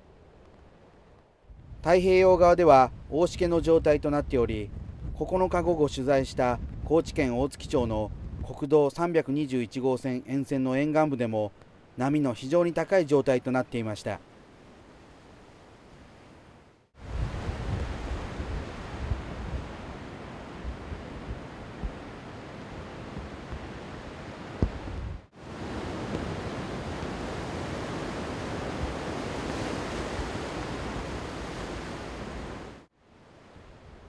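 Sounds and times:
wind gusting on microphone: 0.9 - 8.7, 14.6 - 34.0
heavy surf breaking on rocks: 17.0 - 32.9.

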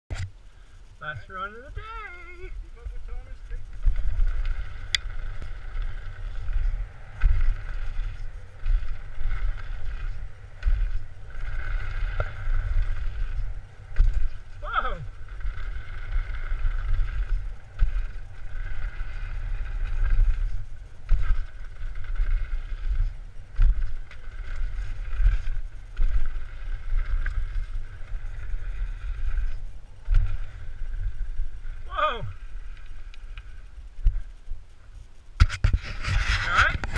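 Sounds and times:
steady hiss: 0.2 - 36.8
wind buffeting microphone: 1.7 - 36.9.

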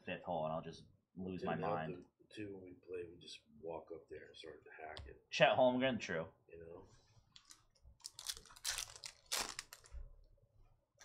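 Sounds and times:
foil wrapper crinkling and tearing: 7.4 - 10.0.

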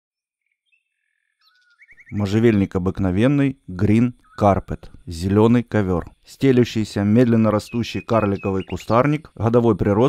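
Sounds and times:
songbird chirping and trilling: 0.4 - 10.0.

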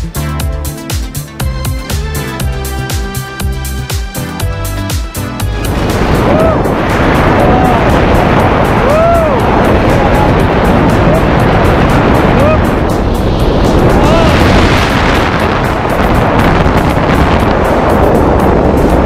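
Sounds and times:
wind rushing over microphone: 5.2 - 19.0
rising and falling tones: 5.4 - 17.3.

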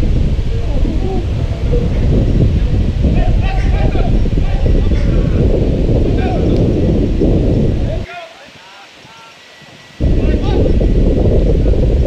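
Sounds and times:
wind buffeting microphone: 0.0 - 12.0
distant shouted voices: 3.1 - 5.5, 6.1 - 6.6, 7.8 - 10.8.

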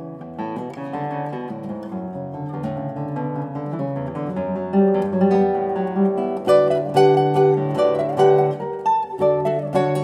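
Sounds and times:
classical guitar playing: 0.0 - 10.0.

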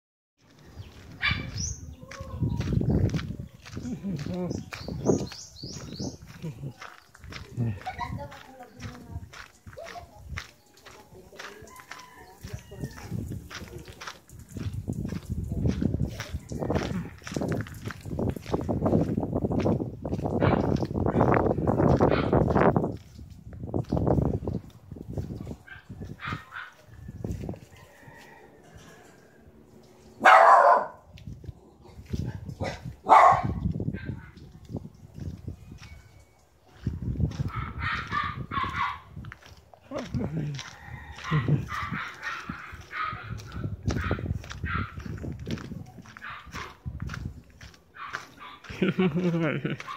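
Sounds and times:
dog barking: 1.2 - 1.6, 20.4 - 20.8, 22.1 - 22.4, 25.6 - 26.9, 30.2 - 31.0, 32.3 - 34.4, 37.5 - 39.1, 41.2 - 45.0, 46.2 - 46.8.

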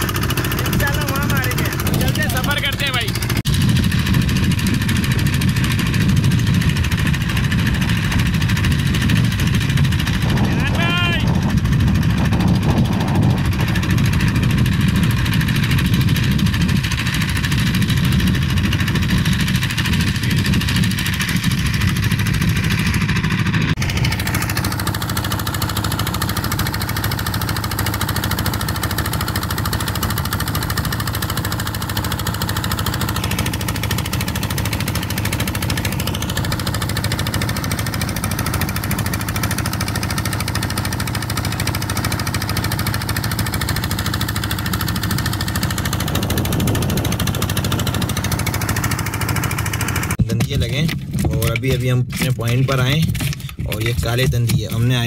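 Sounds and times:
boat engine thrumming: 0.0 - 55.0.

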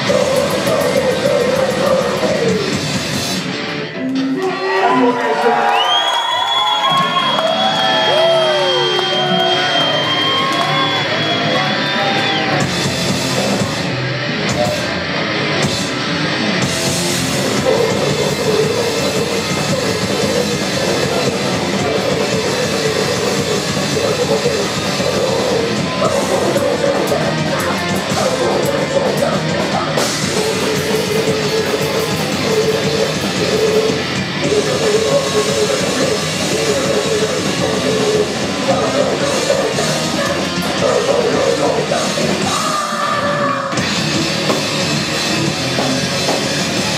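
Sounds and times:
metal band playing live: 0.0 - 4.9, 7.0 - 46.9.

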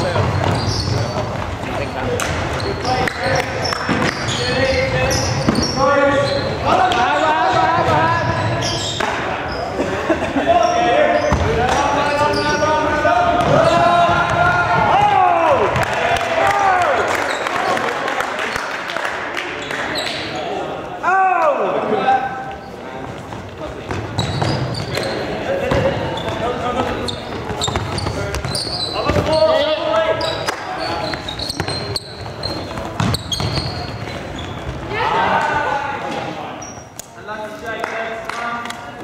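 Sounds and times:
players shouting: 10.4 - 18.0, 34.7 - 36.4
trainers squeaking: 26.1 - 34.9.

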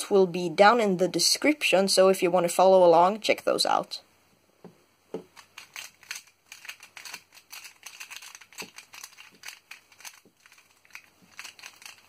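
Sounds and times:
plastic puzzle clicking: 5.2 - 12.0.

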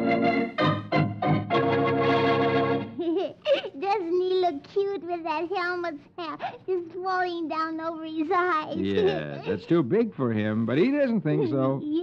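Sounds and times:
organ chords: 0.0 - 3.0.

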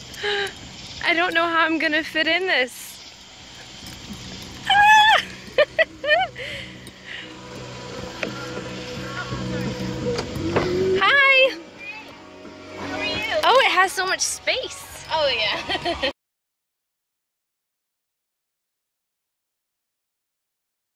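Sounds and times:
car engine idling: 3.2 - 15.4
music on car stereo: 5.6 - 16.1.

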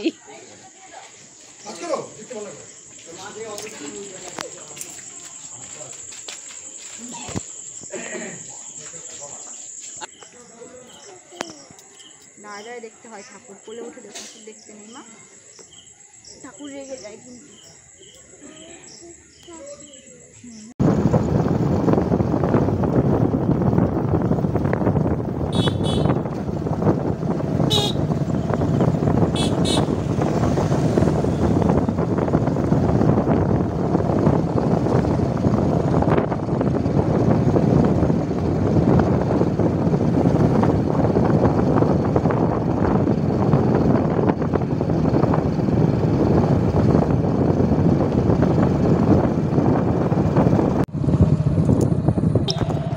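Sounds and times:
motorbike engine: 20.8 - 52.9
wind rush on microphone: 20.8 - 52.9
motorbike horn toots: 25.4 - 26.4, 27.6 - 30.4, 52.5 - 52.9.

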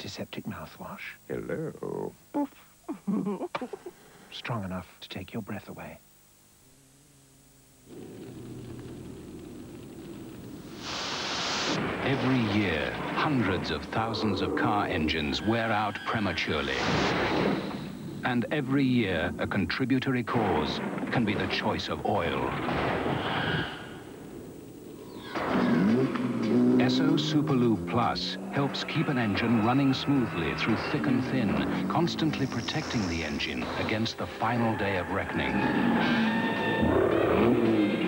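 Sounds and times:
low rumbling drone: 6.8 - 10.8
loud hiss: 7.8 - 14.1, 14.7 - 18.4, 31.6 - 34.3
explosion rumble: 11.5 - 15.1, 20.3 - 24.6
car engine revving: 25.4 - 32.7.

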